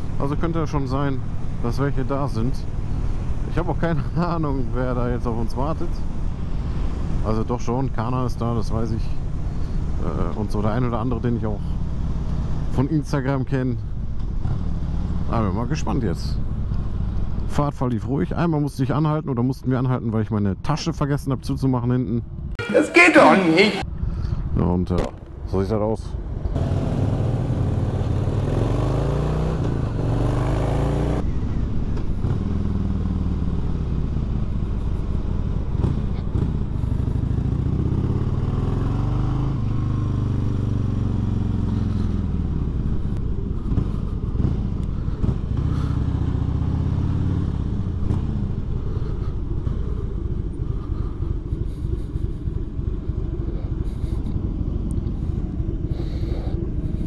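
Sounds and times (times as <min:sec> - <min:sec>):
motorcycle engine: 0:13.8 - 0:15.5, 0:26.5 - 0:57.0.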